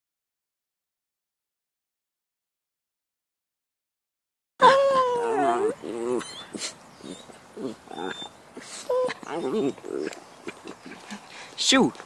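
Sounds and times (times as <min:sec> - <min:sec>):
dog whining: 0:04.6 - 0:11.0.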